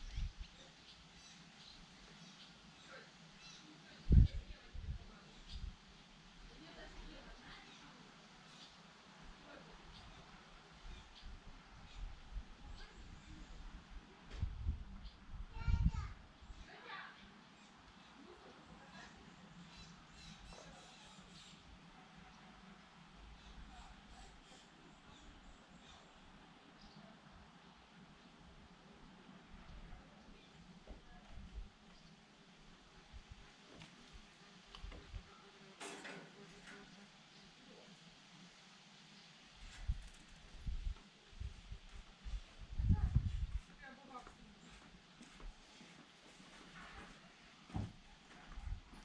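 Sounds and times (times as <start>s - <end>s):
faint bird chirps: 0.0s - 5.8s, 9.5s - 13.8s, 14.9s - 22.4s, 23.3s - 27.2s.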